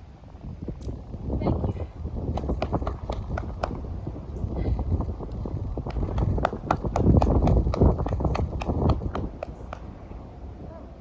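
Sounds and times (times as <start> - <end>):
horse hoofbeats trotting on sand: 5.3 - 9.9.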